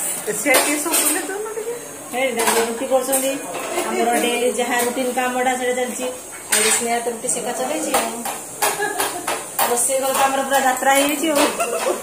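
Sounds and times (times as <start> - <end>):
dishes and utensils clattering: 0.0 - 1.5, 2.2 - 5.1, 6.3 - 7.0, 7.8 - 12.0.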